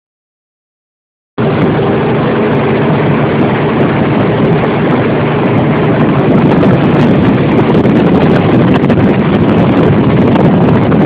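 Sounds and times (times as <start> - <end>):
truck engine and road rumble: 1.4 - 11.0.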